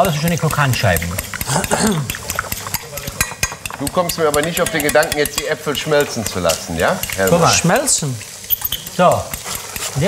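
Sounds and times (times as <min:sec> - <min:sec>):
fat crackling in a frying pan: 0:00.0 - 0:10.0.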